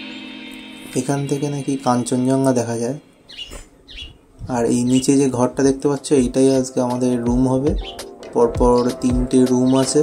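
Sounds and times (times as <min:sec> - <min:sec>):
small bird chirping: 0:03.2 - 0:05.3, 0:07.8 - 0:08.1.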